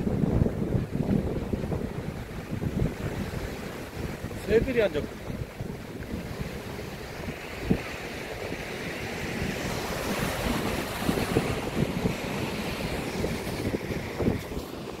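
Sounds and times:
surf breaking over rocks: 0.0 - 15.0
wind buffeting microphone: 0.0 - 15.0.

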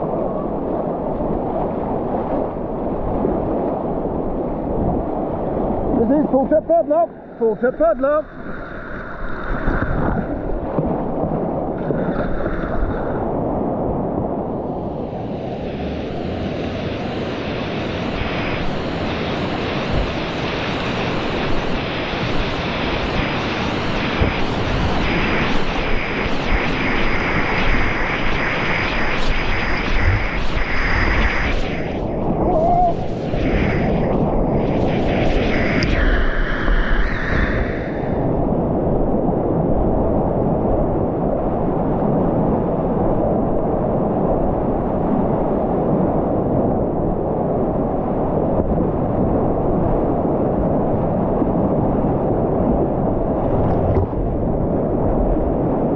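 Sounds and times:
waves breaking over bow: 8.0 - 44.4, 47.6 - 55.9.

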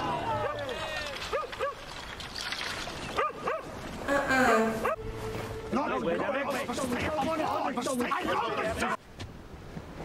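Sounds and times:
din of shouting voices: 5.7 - 9.0
men yelling war cries: 5.7 - 9.0.

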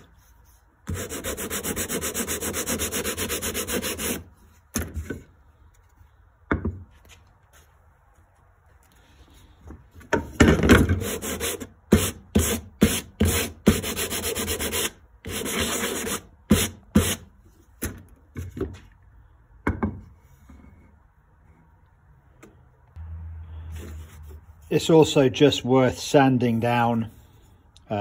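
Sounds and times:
sandpaper scraping wood: 0.0 - 4.3, 11.0 - 17.3.

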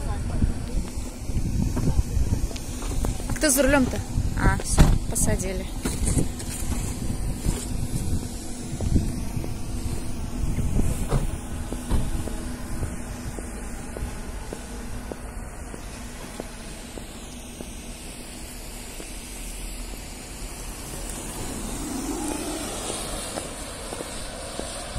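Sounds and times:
road and tyre noise: 0.0 - 24.9.

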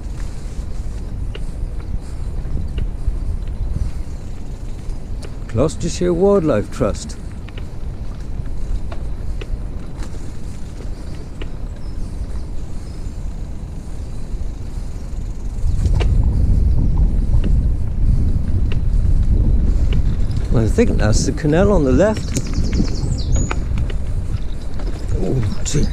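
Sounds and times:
wheels rolling over dirt path: 0.0 - 25.9.

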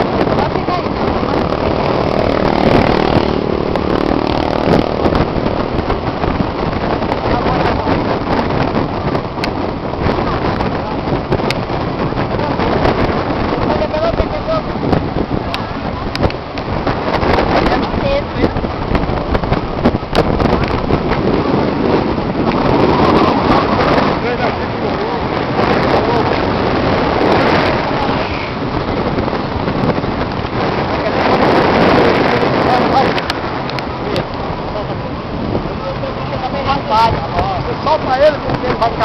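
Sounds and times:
breaking surf: 0.0 - 39.0
wind noise on microphone: 0.0 - 39.0.

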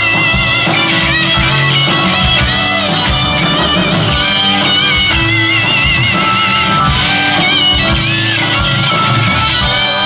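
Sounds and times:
bass: 0.0 - 10.0
drums: 0.0 - 10.0
electric guitar lead: 0.0 - 10.0.

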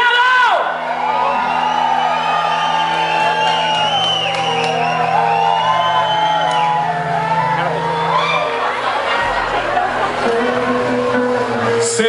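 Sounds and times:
crowd whooping and shouting: 0.0 - 11.8
live band held chord: 2.2 - 12.0.

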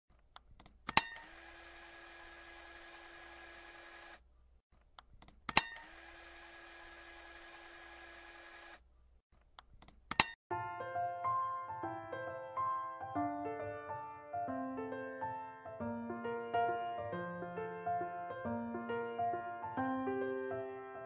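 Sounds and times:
sharp mechanical click: 0.3 - 1.4, 5.0 - 6.2, 9.5 - 10.4.

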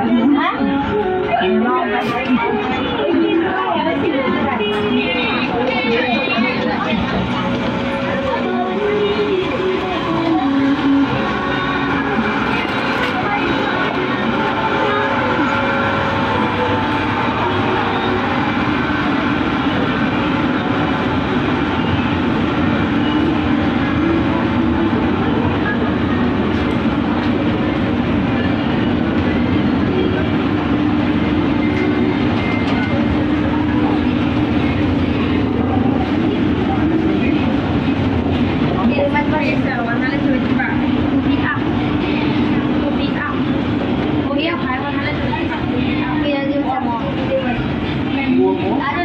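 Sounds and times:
shoppers' voices: 0.0 - 49.0.

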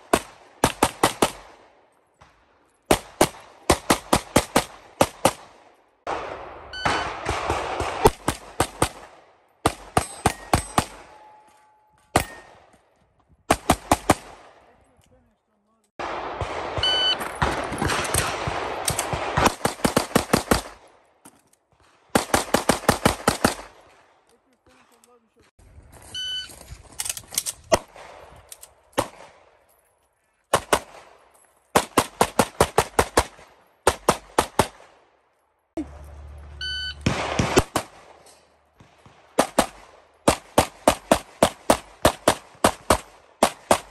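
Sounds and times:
rapid pistol fire: 2.9 - 11.1, 16.0 - 20.8, 22.1 - 23.8, 37.0 - 38.2, 39.0 - 43.9.

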